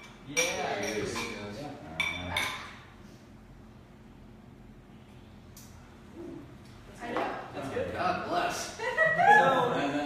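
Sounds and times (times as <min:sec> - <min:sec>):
drinking glasses clinking: 0:00.0 - 0:01.4.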